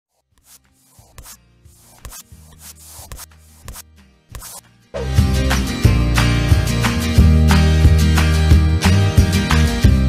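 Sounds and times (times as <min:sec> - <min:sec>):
rubbing hissing glue strokes: 0:00.1 - 0:04.6.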